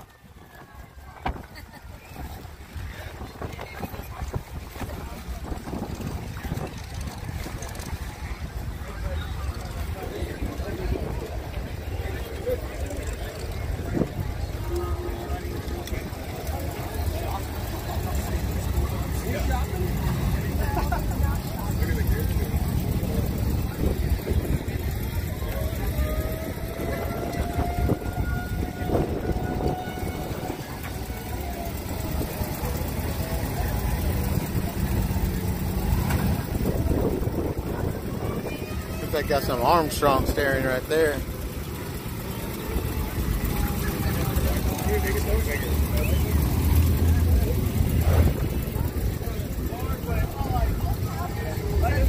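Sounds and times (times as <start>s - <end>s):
crowd talking: 0.0s - 52.0s
low rumble: 41.2s - 52.0s.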